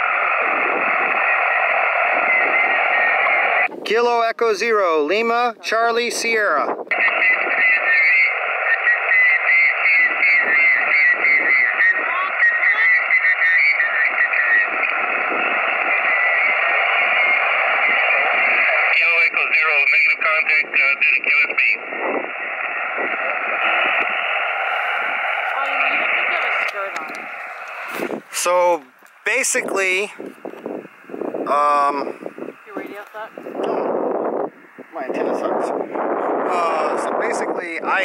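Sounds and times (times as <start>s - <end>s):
distant radio voices: 0.0s - 3.8s, 6.9s - 38.0s
radio band noise hiss: 0.0s - 38.0s.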